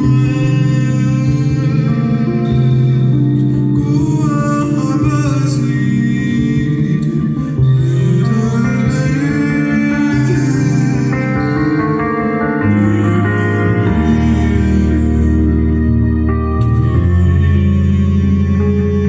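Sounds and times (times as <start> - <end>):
bowed cello low notes: 0.0 - 19.0
man singing: 0.0 - 19.0
piano chords: 0.0 - 19.0.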